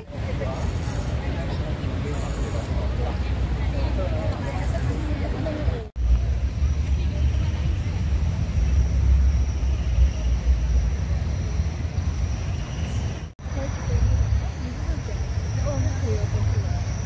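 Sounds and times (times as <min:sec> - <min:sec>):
faint voices of people: 0:00.0 - 0:09.0
low crowd rumble: 0:00.0 - 0:17.0.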